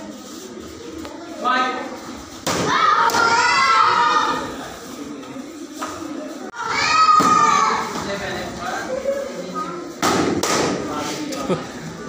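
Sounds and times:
child shouting: 0:02.7 - 0:04.4, 0:06.6 - 0:07.9.

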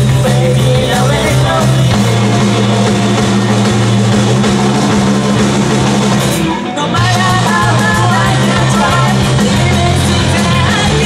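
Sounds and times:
drums: 0:00.0 - 0:11.0
electric guitars: 0:00.0 - 0:11.0
rock band playing live: 0:00.0 - 0:11.0.

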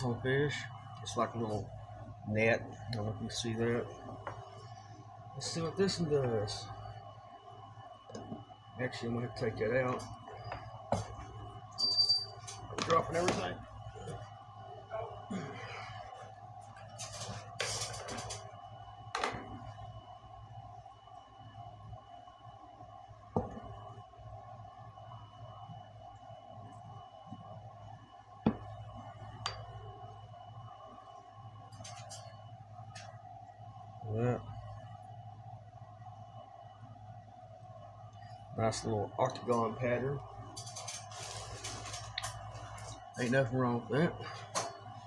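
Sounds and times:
background hum: 0:00.0 - 0:45.0.

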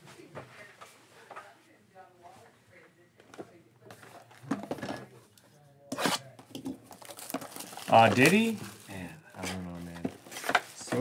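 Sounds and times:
plastic shrink wrap ripping: 0:06.9 - 0:09.0.

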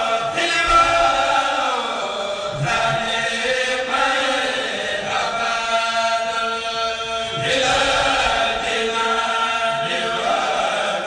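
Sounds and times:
choir chanting in unison: 0:00.0 - 0:11.0.

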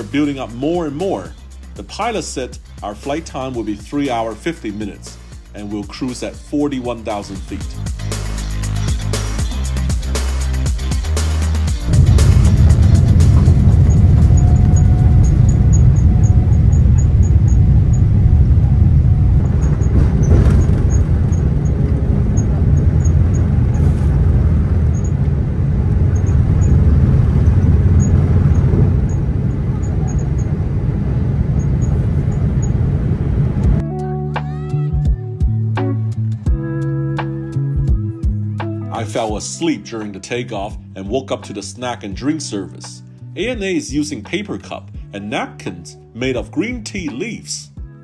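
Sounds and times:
jet engines low rumble: 0:11.0 - 0:33.9
faint engine whine: 0:11.8 - 0:33.9.

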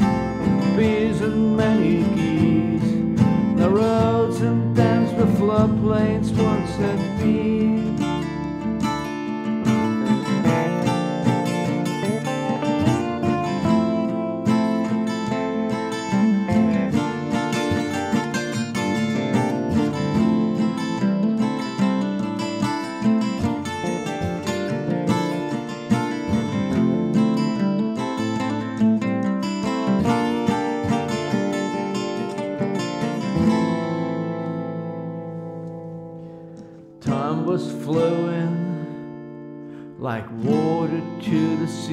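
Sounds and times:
bass line: 0:00.0 - 0:36.8
acoustic blues guitars: 0:00.0 - 0:41.9.

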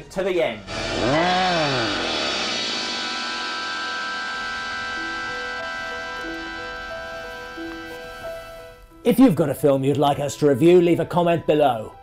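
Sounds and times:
steady music tones: 0:00.0 - 0:12.0.

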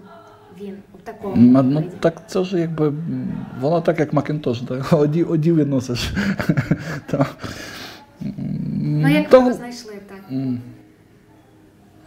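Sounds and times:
man laughing: 0:05.9 - 0:07.5.

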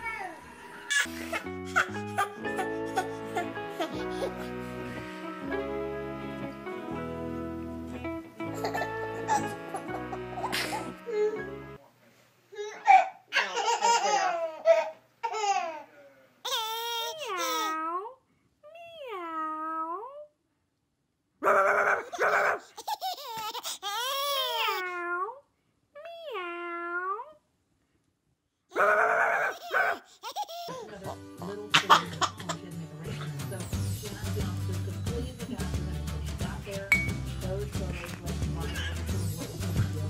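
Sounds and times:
baby laughing and squealing: 0:00.0 - 0:04.4, 0:21.6 - 0:24.8, 0:28.8 - 0:30.8
background music with steady beat: 0:01.1 - 0:11.8, 0:31.0 - 0:40.0
music with steady beat: 0:33.5 - 0:40.0
baby vocalizing: 0:38.0 - 0:39.2.

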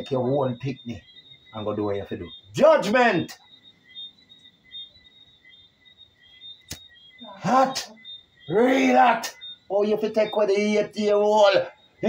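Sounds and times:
high-pitched chirping: 0:00.0 - 0:12.0.

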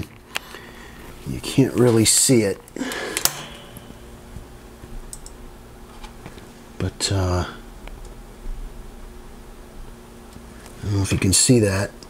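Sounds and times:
low room hum: 0:00.0 - 0:12.0
click: 0:05.1 - 0:05.4.

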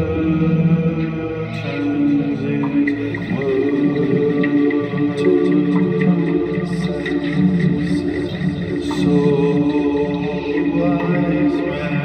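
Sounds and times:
ambient droning music: 0:00.0 - 0:12.0.

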